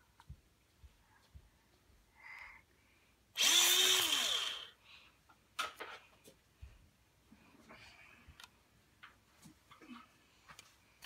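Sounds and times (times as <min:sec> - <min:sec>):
electric pencil sharpener grinding: 0:03.4 - 0:04.8.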